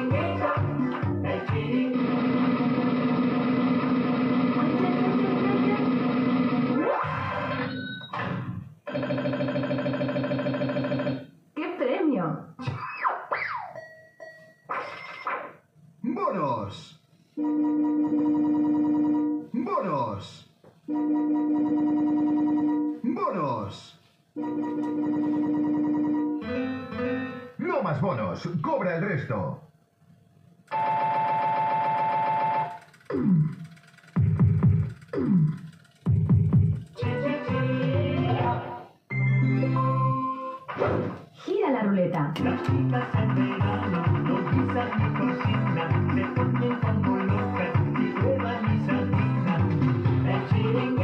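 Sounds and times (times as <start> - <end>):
slot machine jingle: 20.9 - 22.9, 24.4 - 27.5, 30.7 - 33.0, 39.1 - 40.7.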